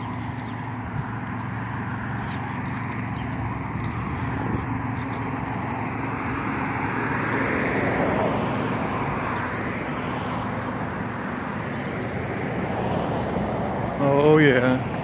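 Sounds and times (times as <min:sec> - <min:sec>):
rush of cars on street: 0:00.0 - 0:15.0
vehicle passing by: 0:00.0 - 0:15.0.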